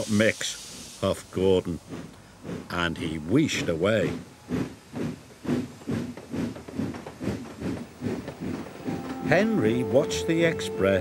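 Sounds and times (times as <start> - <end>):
steam locomotive chuffing: 0.0 - 11.0.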